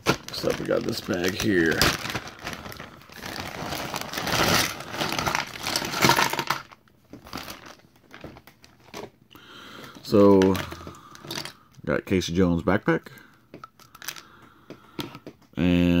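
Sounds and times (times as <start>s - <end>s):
small plastic pieces spilling: 0.0s - 7.8s
plastic bag crinkling: 0.0s - 9.1s, 9.7s - 11.6s.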